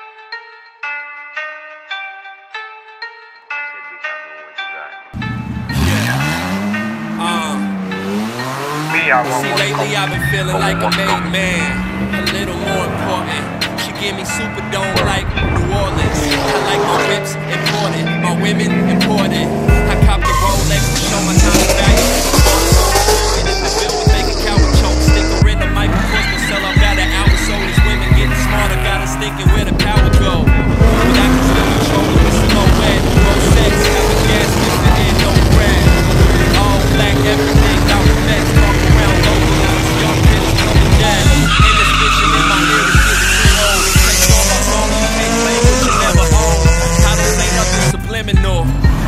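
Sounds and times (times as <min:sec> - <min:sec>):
hip-hop music with heavy beat: 0:00.0 - 0:49.0
cars accelerating hard: 0:05.2 - 0:49.0
tyre squeal: 0:22.3 - 0:29.2, 0:40.6 - 0:47.9.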